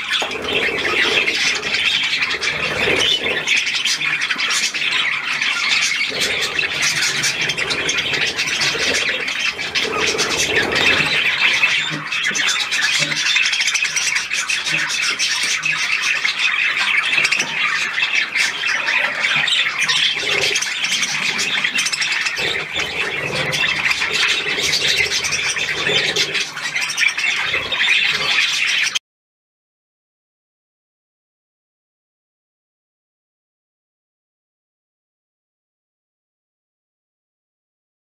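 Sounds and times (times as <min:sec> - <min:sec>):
budgerigars chattering and squawking: 0:00.0 - 0:29.0.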